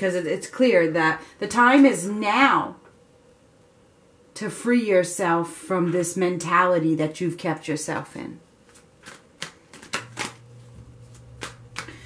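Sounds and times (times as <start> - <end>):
cards being shuffled: 8.6 - 12.0
crisp card snaps: 8.7 - 10.4, 11.1 - 12.0.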